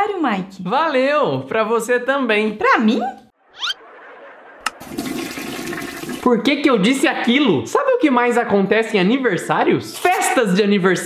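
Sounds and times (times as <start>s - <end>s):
toilet flush click: 4.6s - 6.3s.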